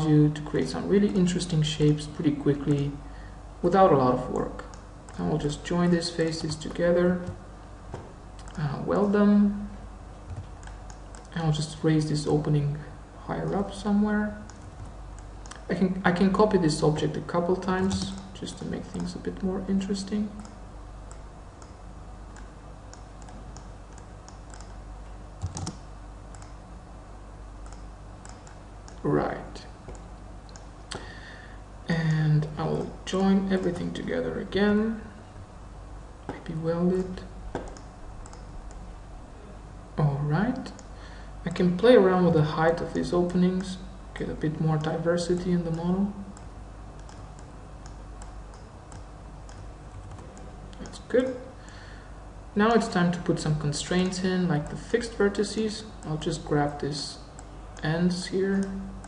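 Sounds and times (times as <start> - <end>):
steady low hum: 0.0 - 59.0
mouse clicks: 20.4 - 24.8, 27.6 - 29.0, 37.0 - 38.8, 46.4 - 51.0
keyboard keystrokes: 25.4 - 26.6.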